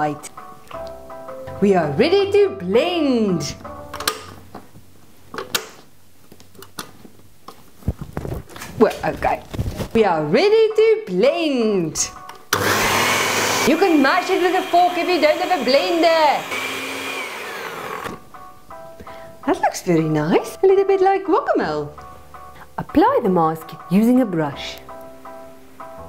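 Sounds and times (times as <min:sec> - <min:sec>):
background music with plucked notes: 0:00.0 - 0:05.7, 0:09.9 - 0:26.0
blender motor winding down: 0:12.6 - 0:18.2.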